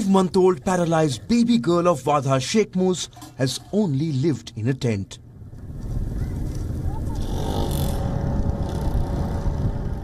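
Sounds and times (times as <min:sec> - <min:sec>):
outdoor low rumble: 0:05.2 - 0:10.0.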